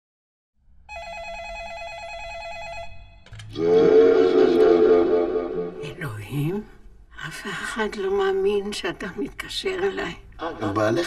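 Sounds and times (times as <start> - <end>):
electronic telephone ringing: 0.9 - 3.4.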